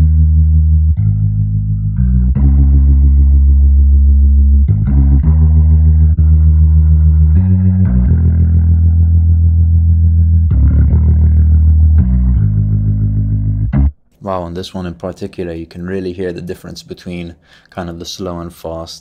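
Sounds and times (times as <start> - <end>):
bass guitar through rotary speaker: 0.0 - 16.9.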